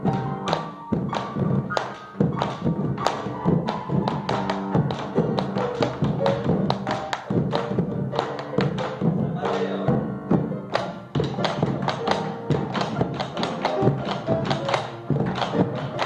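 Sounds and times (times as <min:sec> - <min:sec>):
bass drum beating rhythm: 0:00.0 - 0:16.0.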